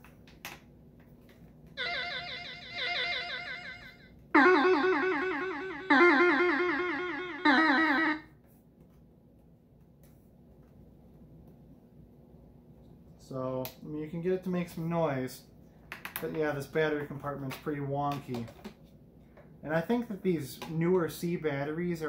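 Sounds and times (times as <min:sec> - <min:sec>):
toy guitar synthesizer notes: 0:01.8 - 0:08.3.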